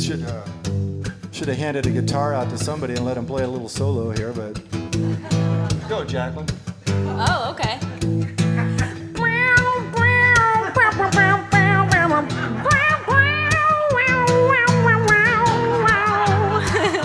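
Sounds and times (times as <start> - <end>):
strummed acoustic guitar: 0.0 - 17.0.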